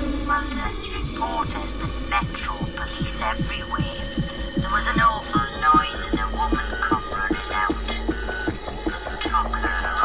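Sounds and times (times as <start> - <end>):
wavering acid synth line: 0.0 - 10.0
fast kick drum: 1.0 - 10.0.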